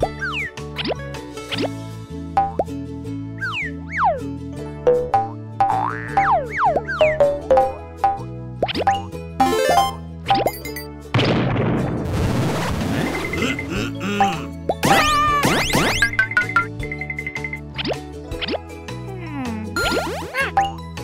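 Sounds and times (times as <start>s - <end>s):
bouncy cartoon music: 0.0s - 21.0s.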